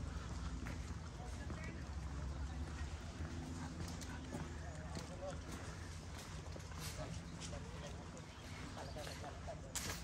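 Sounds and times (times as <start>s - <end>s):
running footsteps on asphalt: 0.0s - 9.5s
faint voices: 0.0s - 10.0s.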